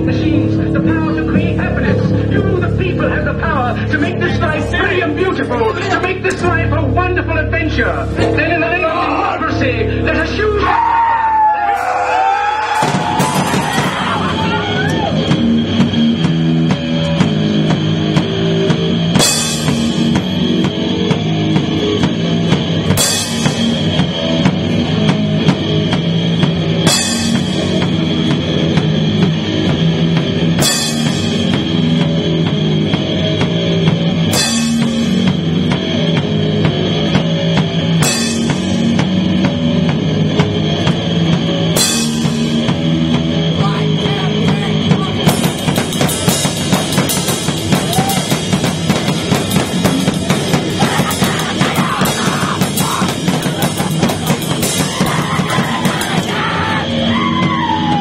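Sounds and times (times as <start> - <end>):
punk rock band playing: 0.0 - 58.0
crash cymbal strikes: 15.2 - 32.9.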